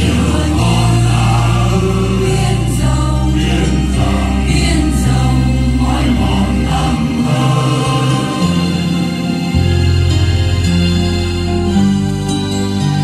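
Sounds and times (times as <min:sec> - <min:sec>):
choir singing a hymn: 0:00.0 - 0:10.6
keyboard accompaniment: 0:00.0 - 0:13.0.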